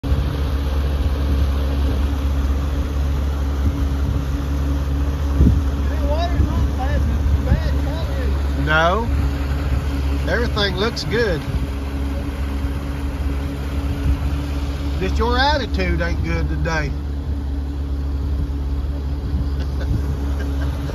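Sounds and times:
vehicle engine idling: 0.0s - 20.9s.

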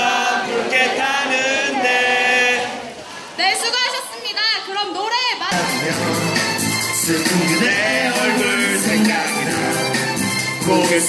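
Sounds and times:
crowd singing in unison: 0.0s - 3.4s, 5.5s - 11.0s.

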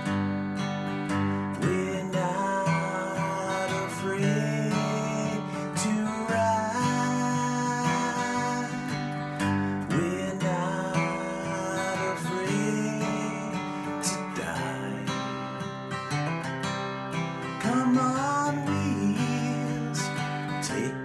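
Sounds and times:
acoustic guitar strumming chords: 0.0s - 21.0s.

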